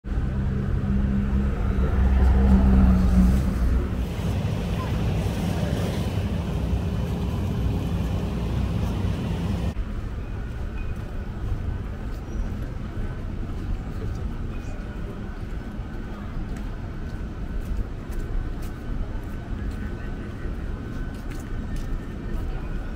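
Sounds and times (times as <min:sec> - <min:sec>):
street traffic hum: 0:00.0 - 0:22.9
vehicle engine passing close: 0:00.1 - 0:09.8.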